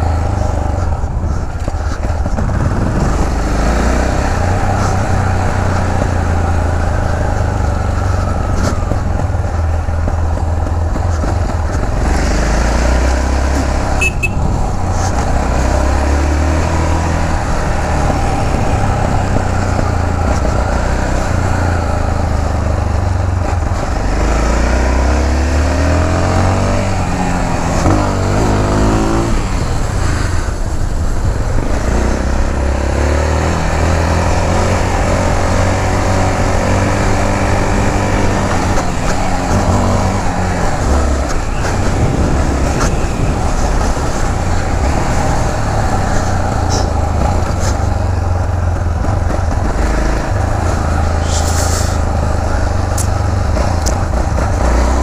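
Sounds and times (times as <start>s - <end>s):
motorcycle engine revving: 0.0s - 55.0s
wind and road noise: 0.0s - 55.0s.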